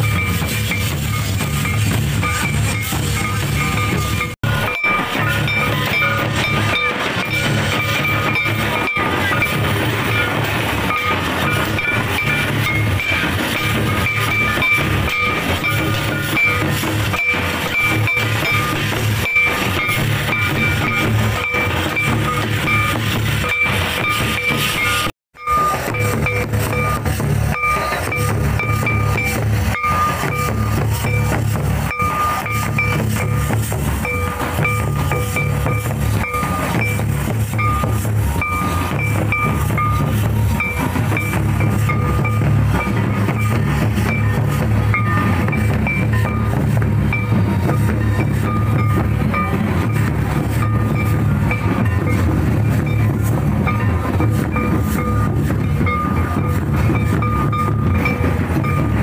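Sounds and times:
drums beating a rhythm: 0.0s - 59.0s.

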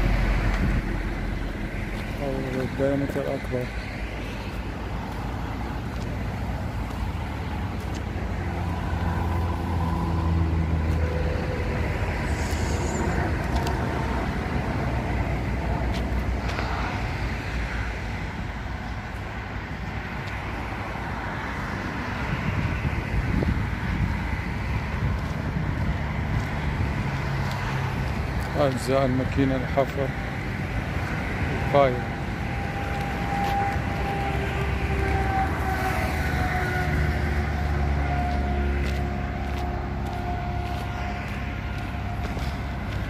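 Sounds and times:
heavy engine hum: 0.0s - 29.0s
road traffic rumble: 0.0s - 43.0s.

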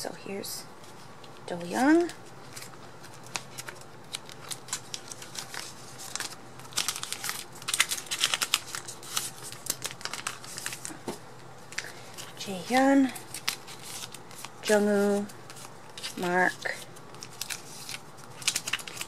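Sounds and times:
plastic pages crinkling: 0.8s - 11.1s, 11.7s - 19.0s.

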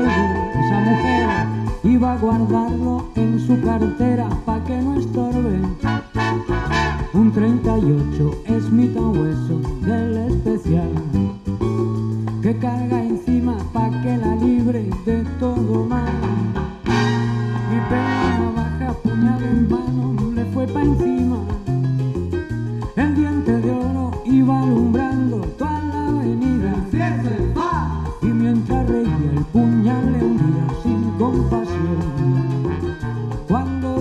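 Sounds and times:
live salsa band playing: 0.0s - 34.0s
walking bass line: 0.0s - 34.0s
bright accented band hit: 16.8s - 18.5s.

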